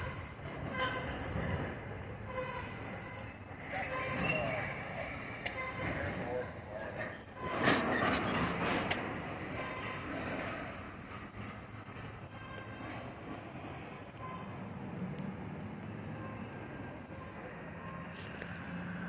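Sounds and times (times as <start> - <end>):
freight cars clanking: 0.0 - 19.0
wheels rumbling on rail: 0.0 - 19.0.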